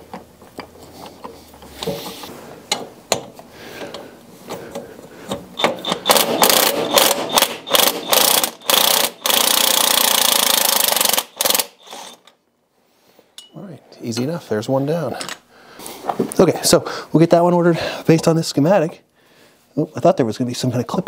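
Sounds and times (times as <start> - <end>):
power wrench spinning: 5.6 - 12.3.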